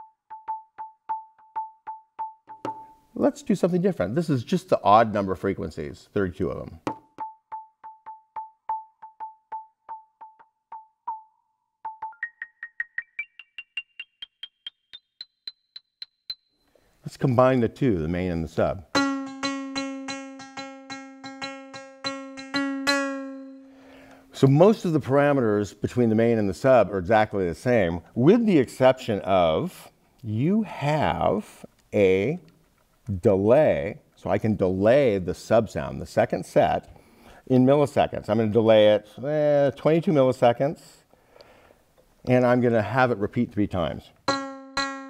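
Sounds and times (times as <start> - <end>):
electronic hand percussion hits: 0.3 - 3.0, 11.9 - 16.5, 44.3 - 45.0.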